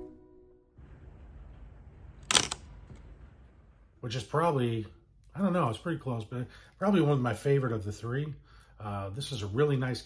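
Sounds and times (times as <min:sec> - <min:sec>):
camera shutter clack: 0:02.2 - 0:02.7.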